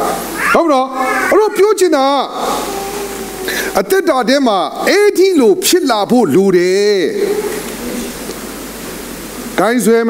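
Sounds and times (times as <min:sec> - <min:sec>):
background hiss: 0:00.0 - 0:10.0
man speaking: 0:00.4 - 0:02.6, 0:03.6 - 0:07.4.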